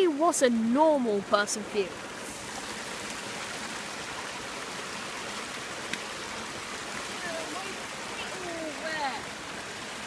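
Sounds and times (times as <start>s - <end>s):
floodwater rushing: 0.0s - 10.0s.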